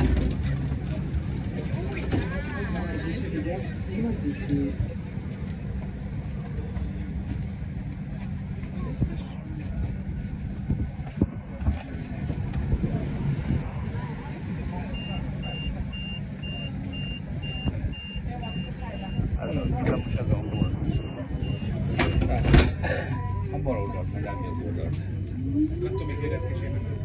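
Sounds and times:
tram running hum and rumble: 0.0 - 27.0
quiet high beep: 23.1 - 24.8.

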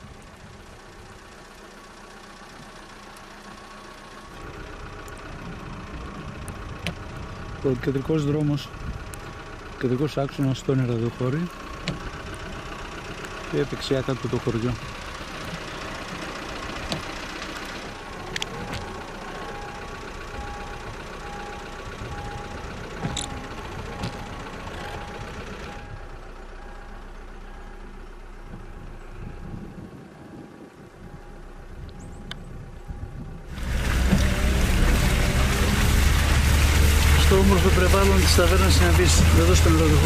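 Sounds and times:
car engine running: 0.0 - 40.0
road noise: 0.0 - 40.0.

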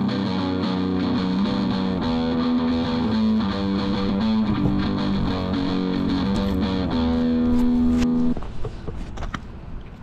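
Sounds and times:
electric guitar chord: 0.0 - 8.4.

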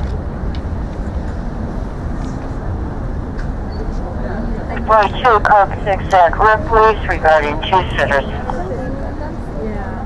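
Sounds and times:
city traffic: 0.0 - 10.0.

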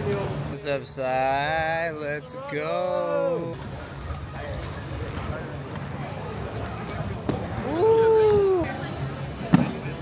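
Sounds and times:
murmur of onlookers: 0.0 - 10.0.

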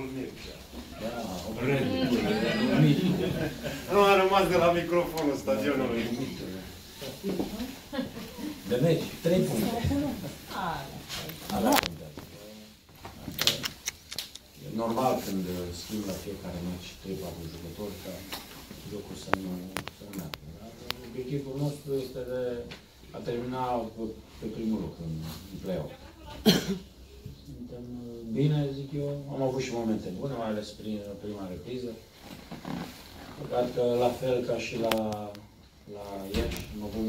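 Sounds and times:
short sharp cough: 26.4 - 26.9.

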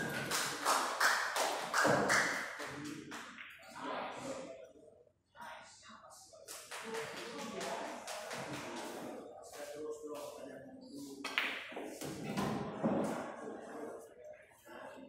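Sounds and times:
people talking: 0.0 - 15.0.

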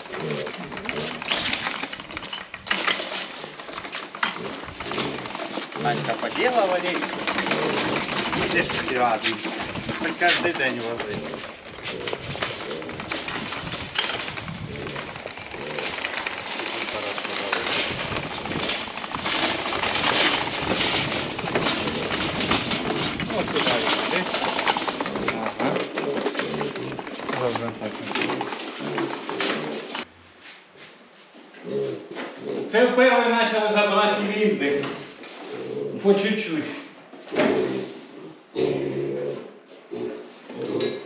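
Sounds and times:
wire cage cart rattling: 0.0 - 30.1.

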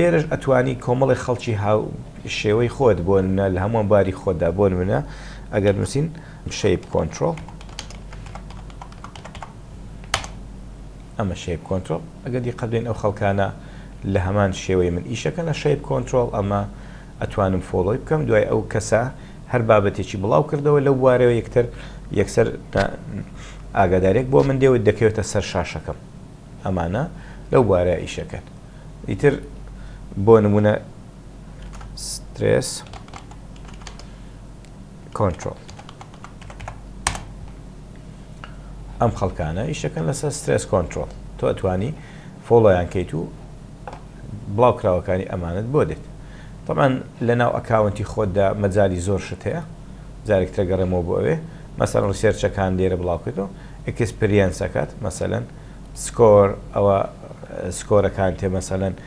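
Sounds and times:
typing on computer keyboard: 7.3 - 10.4, 32.8 - 34.1, 35.3 - 37.3.

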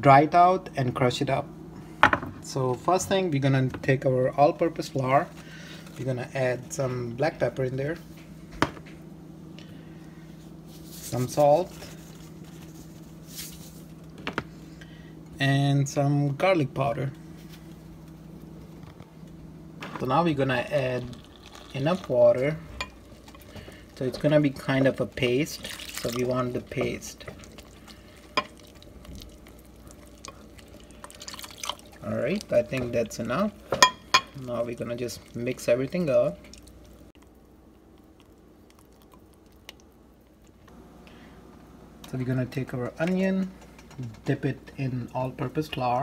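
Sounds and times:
faint low hum: 0.0 - 46.0.

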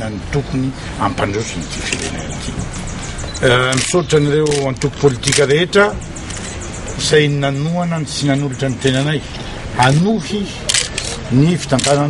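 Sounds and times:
man speaking: 0.0 - 6.0, 6.9 - 12.0
camera shutter clicking: 3.7 - 5.5, 10.7 - 12.0.

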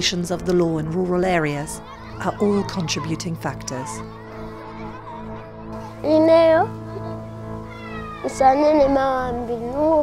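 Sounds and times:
soft sustained music bed: 0.0 - 10.0.

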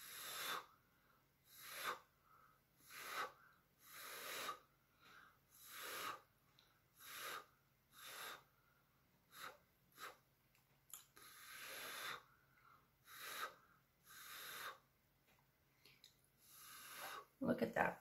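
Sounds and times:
faint puffs of breath: 0.0 - 10.3, 11.0 - 14.9, 16.4 - 17.4.

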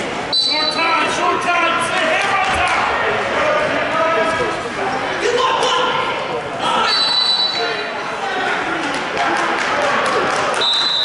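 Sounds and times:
voices calling out in gymnasium: 0.0 - 11.0.

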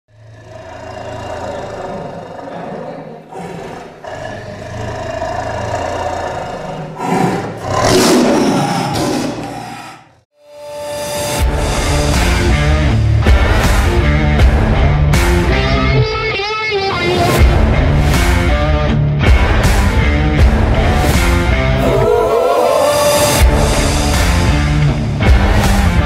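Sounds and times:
rock music with heavy bass: 11.4 - 21.9, 23.4 - 26.0.

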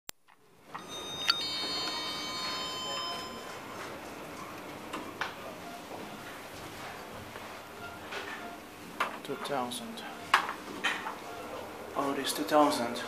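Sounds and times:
elevator click: 0.8 - 3.4
elevator arrival chime: 0.8 - 4.3.

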